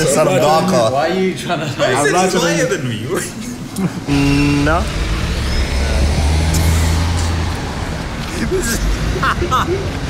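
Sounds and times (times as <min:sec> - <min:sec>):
vehicle engine low hum: 0:04.0 - 0:09.4.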